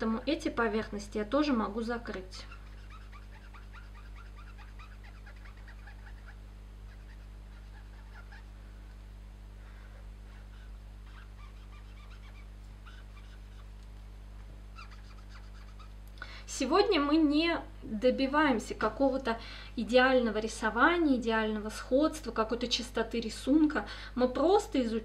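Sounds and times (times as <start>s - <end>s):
marker squeaking on paper: 2.4s - 8.5s, 10.3s - 13.8s, 14.8s - 16.0s.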